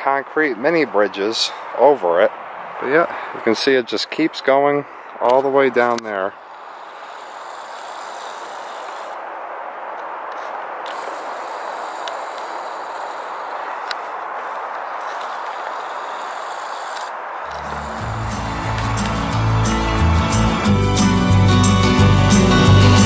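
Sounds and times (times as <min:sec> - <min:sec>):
steady rushing hiss: 0:00.0 - 0:23.0
music with deep bass line: 0:17.5 - 0:23.0.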